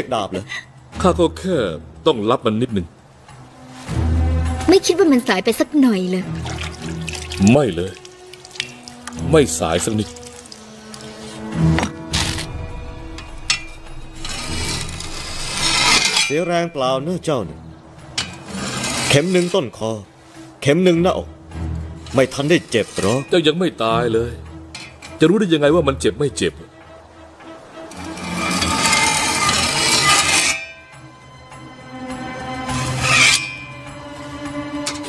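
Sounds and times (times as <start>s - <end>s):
blade scraping on whetstone: 13.5s - 16.5s, 18.2s - 19.8s, 22.1s - 23.4s, 27.9s - 30.9s, 32.7s - 33.8s.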